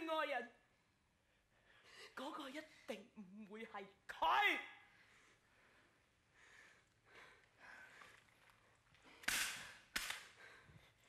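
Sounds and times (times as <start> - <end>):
hand slaps: 9.2 - 10.3.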